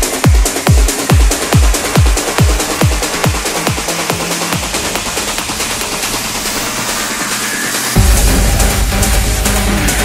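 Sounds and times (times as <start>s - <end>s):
rapid drum roll: 0.1s - 10.0s
sustained low synth note: 8.0s - 10.0s.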